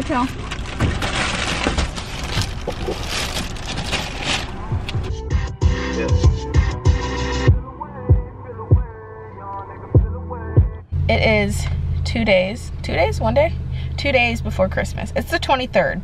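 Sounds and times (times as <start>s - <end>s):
music with thumping bass beat: 4.7s - 9.0s, 9.9s - 10.9s.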